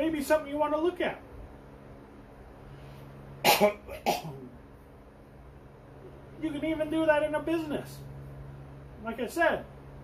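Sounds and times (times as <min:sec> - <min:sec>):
low steady hum: 0:00.0 - 0:10.0
man coughing: 0:03.4 - 0:04.6.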